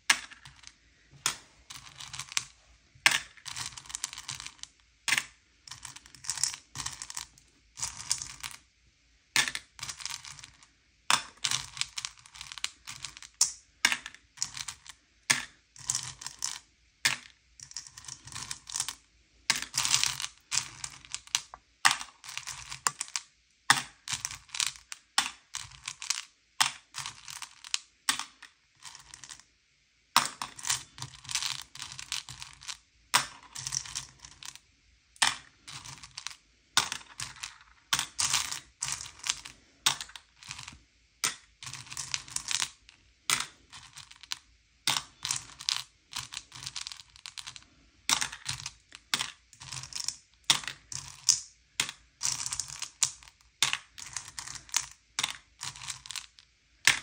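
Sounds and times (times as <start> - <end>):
candies clicking and rattling: 35.2 - 44.3.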